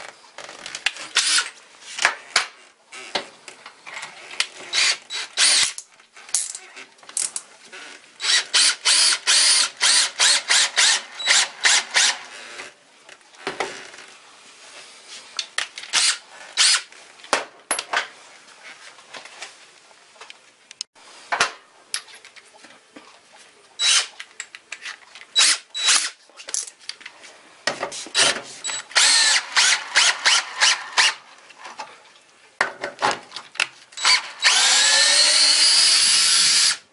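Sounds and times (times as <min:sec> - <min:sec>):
drill driving screw into wood: 0:01.2 - 0:01.5, 0:04.7 - 0:05.8, 0:08.2 - 0:12.3, 0:15.9 - 0:16.9, 0:23.8 - 0:24.1, 0:25.4 - 0:26.2, 0:28.1 - 0:31.2, 0:34.0 - 0:36.8
cordless drill motor running: 0:28.7 - 0:31.2, 0:34.0 - 0:36.8.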